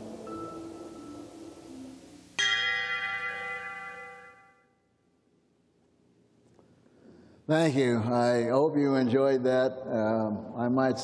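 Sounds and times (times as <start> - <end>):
soft music: 0.0 - 4.9
bell note ringing: 0.2 - 1.4, 2.4 - 4.7.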